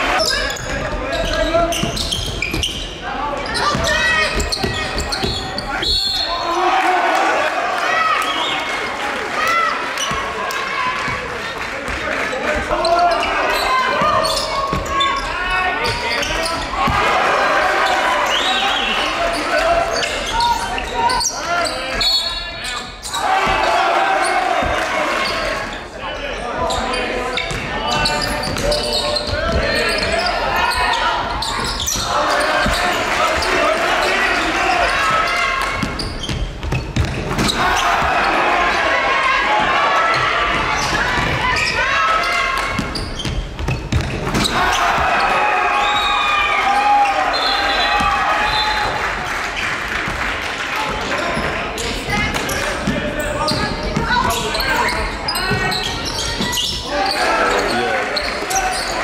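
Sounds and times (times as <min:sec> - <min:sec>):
echoing voices: 0:00.0 - 0:36.0, 0:37.2 - 0:43.0, 0:44.2 - 0:59.0
basketball bouncing on court: 0:03.5 - 0:05.6, 0:13.9 - 0:17.1, 0:27.4 - 0:30.2, 0:31.2 - 0:33.5, 0:34.9 - 0:38.3, 0:40.1 - 0:45.2, 0:50.9 - 0:56.8.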